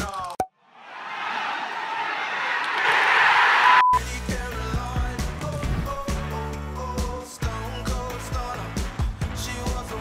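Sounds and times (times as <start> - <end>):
brief high beep: 3.7 - 4.0
music: 4.0 - 10.0.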